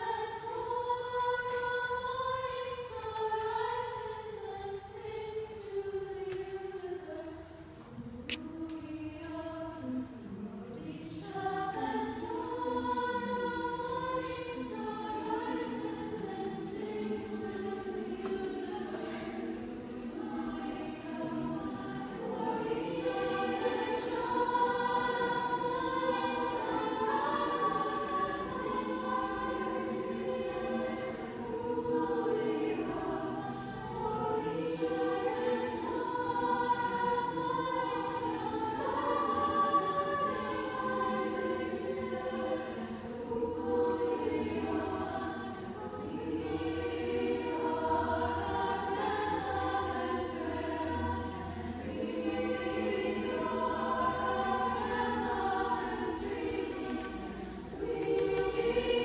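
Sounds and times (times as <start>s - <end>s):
choir singing: 0.0s - 59.0s.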